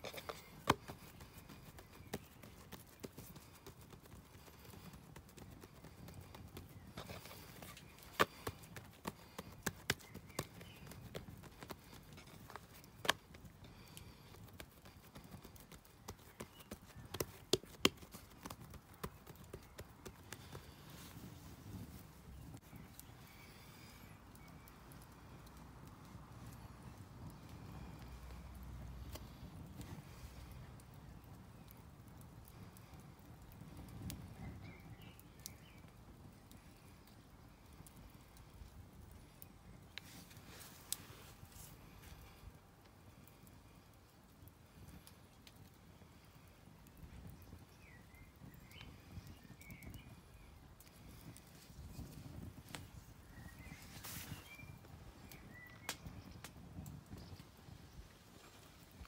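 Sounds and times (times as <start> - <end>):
dough handling sounds: 0.0 - 31.7.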